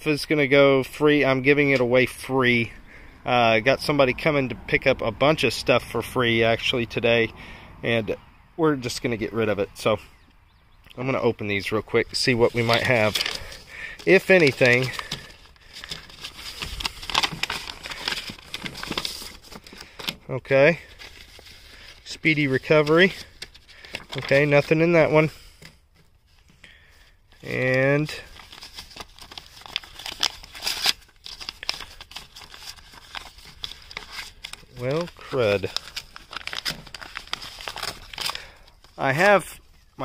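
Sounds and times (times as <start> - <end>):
paper rustling and crinkling: 11.9 - 40.0.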